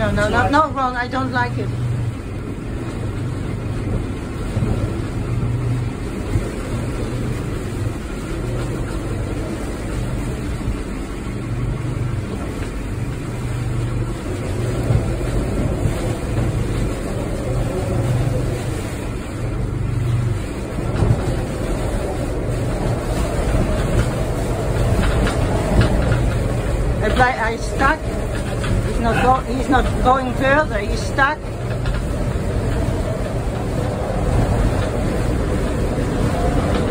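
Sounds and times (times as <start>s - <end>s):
storm wind rushing: 0.0s - 36.9s.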